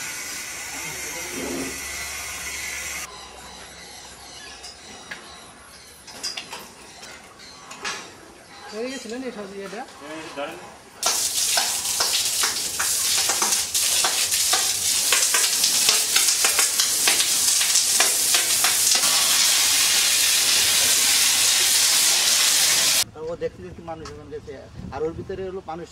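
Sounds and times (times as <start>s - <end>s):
hose water jetting onto hide: 11.0s - 23.0s.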